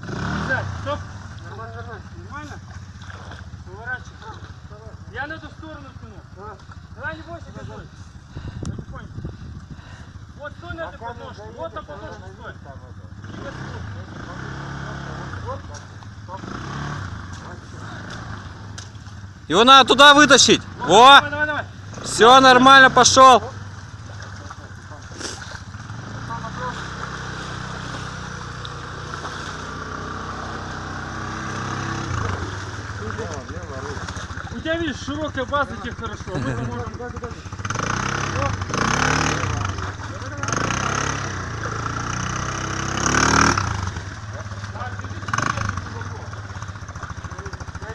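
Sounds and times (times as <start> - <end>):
quad bike engine running: 0.0 - 47.9
men's low voices: 35.7 - 37.5.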